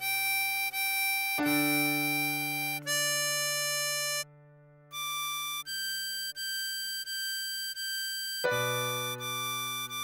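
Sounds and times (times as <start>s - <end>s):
harmonica high note: 0.0s - 10.0s.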